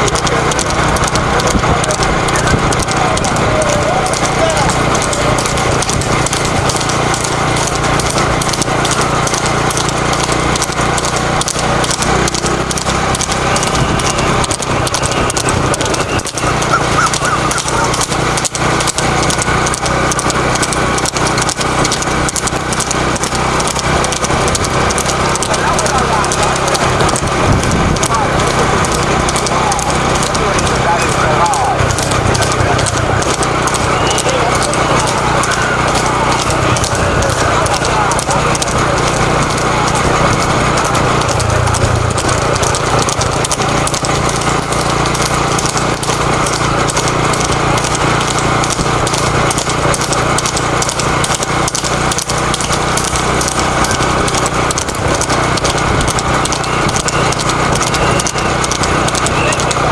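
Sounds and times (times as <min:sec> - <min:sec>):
horse hooves clattering on pavement: 0:00.0 - 0:59.9
people talking: 0:00.0 - 0:59.9.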